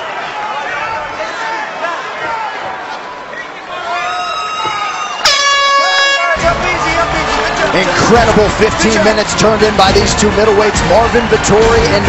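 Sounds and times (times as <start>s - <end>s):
arena crowd shouting: 0.0s - 12.0s
loud steady horn: 5.2s - 6.6s.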